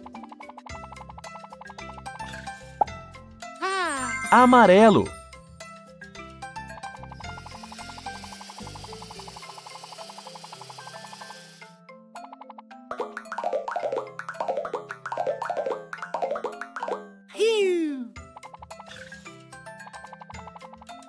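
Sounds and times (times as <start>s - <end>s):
children's background music: 0.0s - 9.8s, 11.2s - 21.0s
fast rattling whir: 7.0s - 11.6s.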